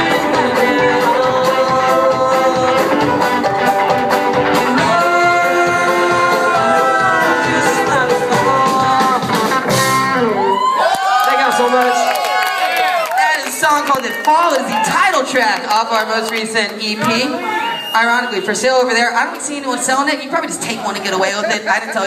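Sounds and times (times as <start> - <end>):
man singing: 0.0 - 3.4, 4.4 - 9.8
bass guitar: 0.0 - 10.7
acoustic and electric guitars: 0.0 - 10.8
drums: 0.0 - 10.8.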